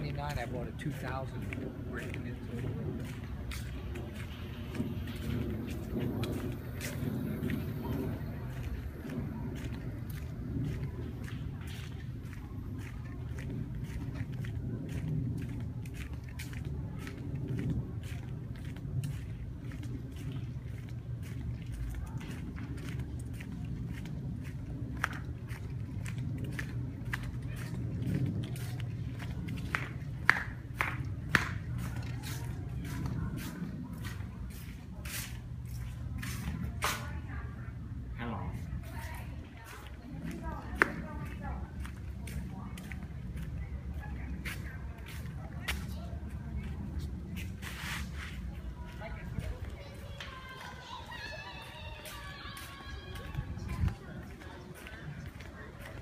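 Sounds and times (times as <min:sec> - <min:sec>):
low steady rumble: 0:00.0 - 0:51.4
footsteps on paved path: 0:00.0 - 0:56.0.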